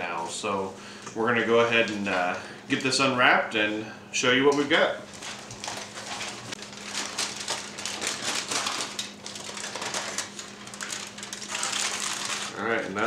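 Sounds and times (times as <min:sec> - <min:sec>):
aluminum foil crinkling: 0:05.1 - 0:13.0.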